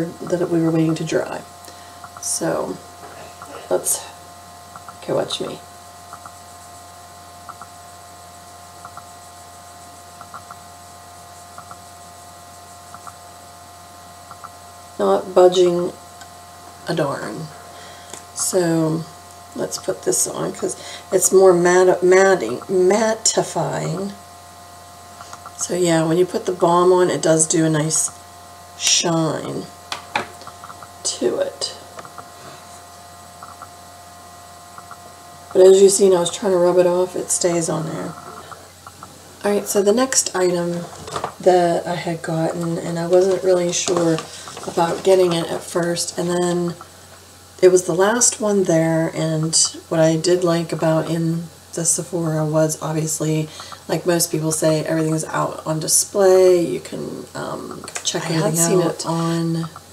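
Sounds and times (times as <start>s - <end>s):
electrical hum: 0.0s - 59.9s
thin constant whine: 0.0s - 59.9s.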